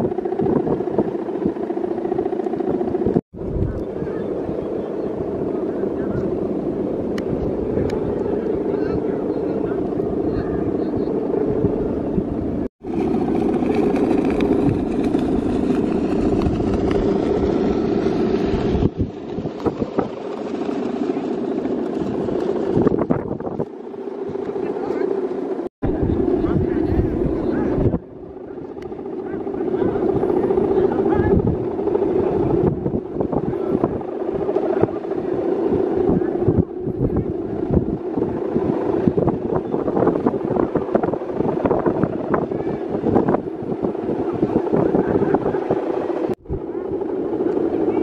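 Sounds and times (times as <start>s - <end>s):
droning hum of kite hummers: 0.0s - 48.0s
voices of onlookers: 25.9s - 32.5s.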